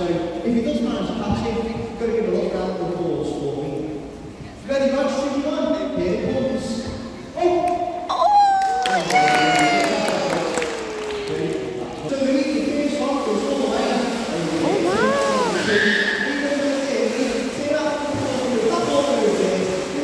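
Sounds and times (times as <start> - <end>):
general chatter: 14.0 - 20.0
spectators exclaiming: 14.7 - 15.9.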